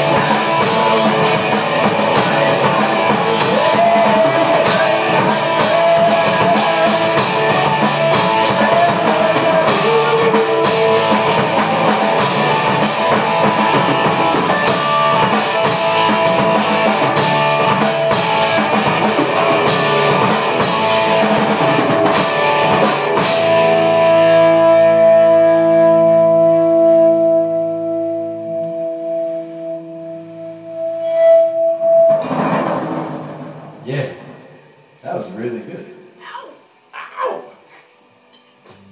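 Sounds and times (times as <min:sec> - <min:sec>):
rock band playing: 0:00.0 - 0:35.0.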